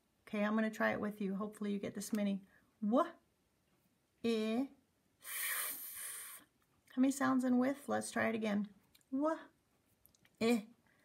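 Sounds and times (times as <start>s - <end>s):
woman blowing th sound: 5.2s - 6.5s.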